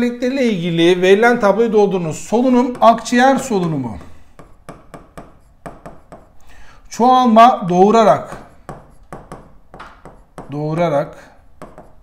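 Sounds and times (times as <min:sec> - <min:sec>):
stylus tapping on glass: 0:08.3 - 0:10.6.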